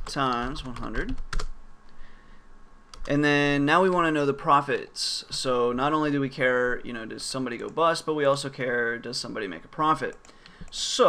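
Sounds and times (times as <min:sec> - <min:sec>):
keyboard typing: 0:00.0 - 0:01.5, 0:02.9 - 0:03.2.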